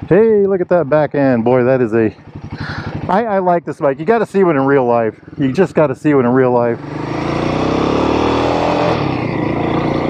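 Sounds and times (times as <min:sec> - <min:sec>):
motorcycle engine accelerating: 0:00.0 - 0:10.0.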